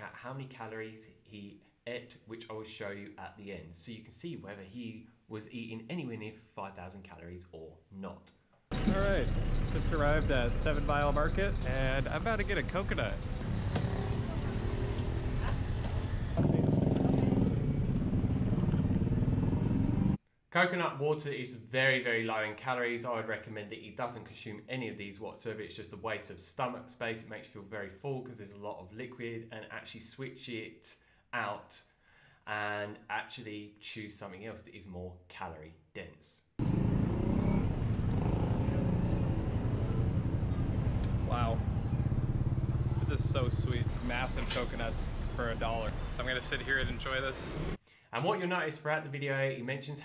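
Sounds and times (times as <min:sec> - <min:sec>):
motorcycle engine running: 0:08.7 - 0:20.2, 0:36.6 - 0:44.7
roadside traffic rumble: 0:08.7 - 0:20.2, 0:36.6 - 0:47.8.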